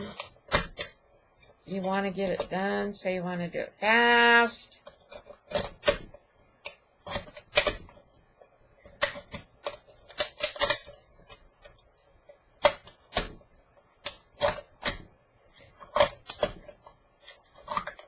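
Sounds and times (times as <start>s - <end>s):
knife cutting a metal can: 0.0s - 1.0s, 4.8s - 8.0s, 9.0s - 11.4s, 14.0s - 15.0s, 15.6s - 18.0s.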